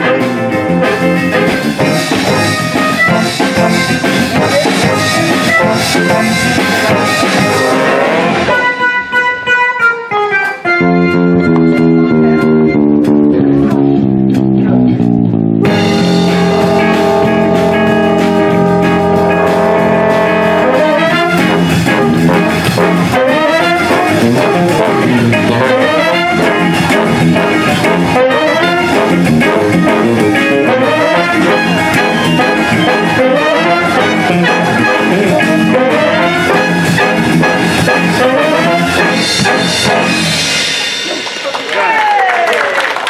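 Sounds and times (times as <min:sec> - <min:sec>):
guitar single notes: 0:00.0 - 0:41.0
big band swing music: 0:00.0 - 0:42.9.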